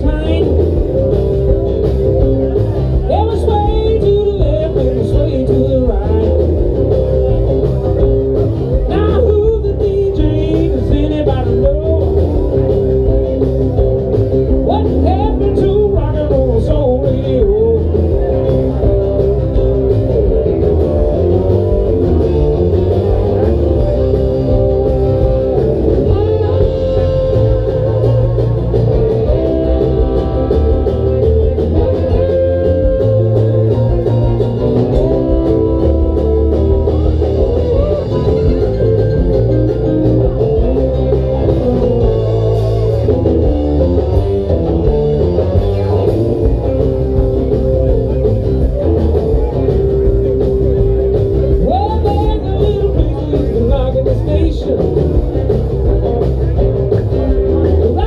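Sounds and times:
band playing blues-rock: 0.0 - 58.0
person singing: 2.9 - 7.6, 8.7 - 12.8, 14.6 - 19.6, 23.0 - 39.6, 51.6 - 55.6.

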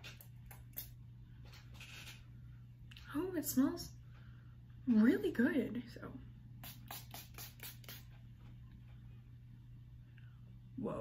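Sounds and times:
pump mister spraying: 6.6 - 8.1.

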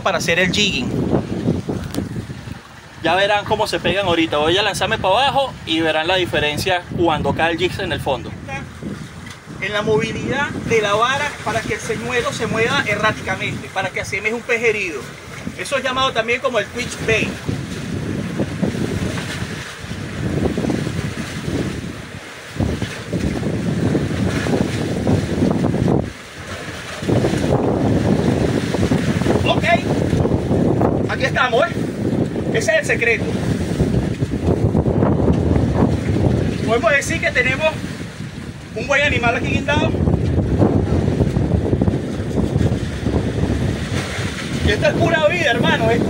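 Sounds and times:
water washing around hull: 0.0 - 46.0
wind buffeting microphone: 0.0 - 46.0.

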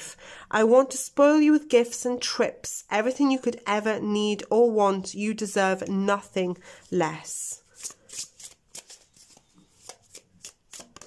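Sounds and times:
cards being shuffled: 7.6 - 11.0.

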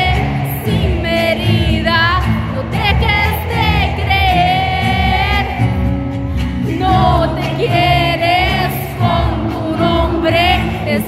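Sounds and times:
pop band playing live: 0.0 - 11.0
woman singing with vibrato: 0.0 - 11.0.

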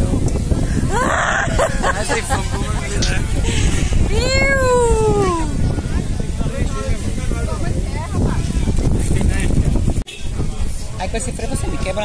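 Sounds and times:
person's playful vocal cry: 0.8 - 2.6.

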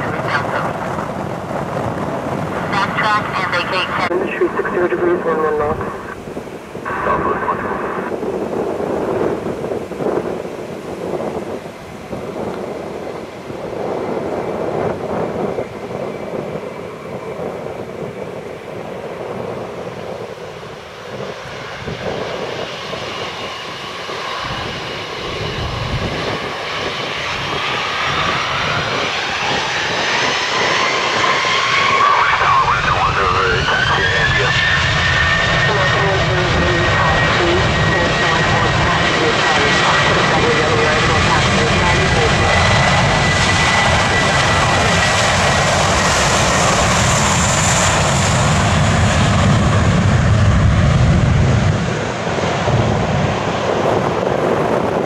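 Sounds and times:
deep engine rumble: 21.2 - 55.0
jet engines spooling up: 22.7 - 55.0.

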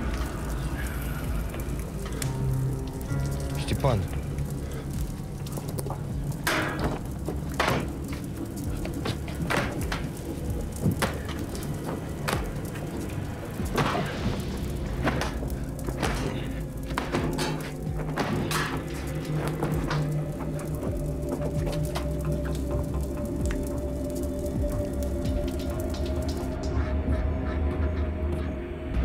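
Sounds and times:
fire crackling and popping: 0.0 - 27.0
tense film score: 0.0 - 29.0.

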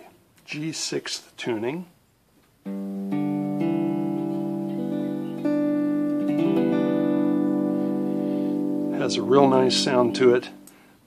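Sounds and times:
lap steel guitar chords: 2.6 - 10.9.

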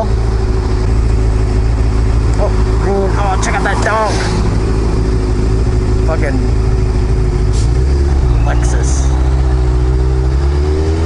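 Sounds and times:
motorcycle engine idling: 0.0 - 3.3, 4.5 - 7.5.

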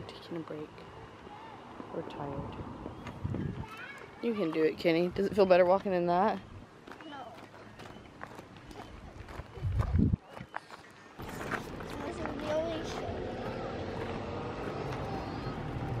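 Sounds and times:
distant indistinct voices: 0.0 - 16.0
outdoor background: 0.0 - 16.0
footsteps crunching on gravel: 6.8 - 15.4.

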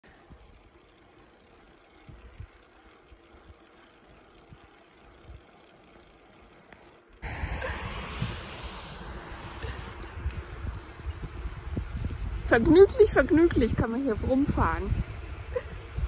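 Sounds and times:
bicycle rolling on asphalt: 0.0 - 16.0
wind on microphone: 7.2 - 16.0.

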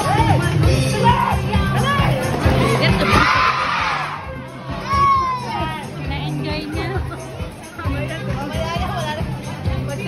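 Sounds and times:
dance music: 0.0 - 10.0
children cheering and shouting: 1.0 - 5.9.

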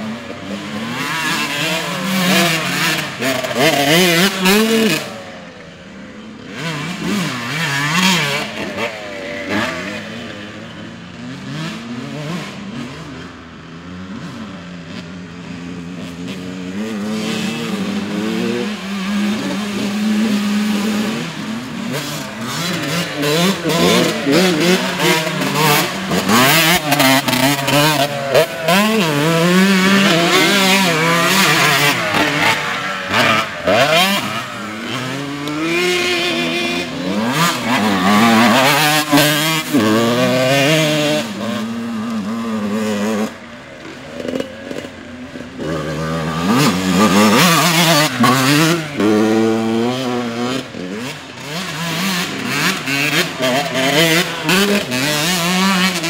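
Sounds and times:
dirt bike engines revving: 0.0 - 56.0.

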